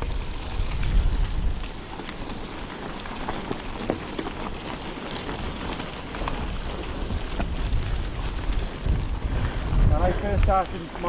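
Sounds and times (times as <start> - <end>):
bike frame rattling: 0.0 - 11.0
bike tyres on gravel: 0.0 - 11.0
wind buffeting microphone: 0.0 - 11.0.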